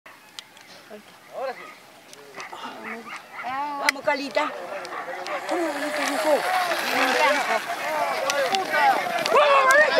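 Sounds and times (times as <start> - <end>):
men shouting: 4.5 - 9.9.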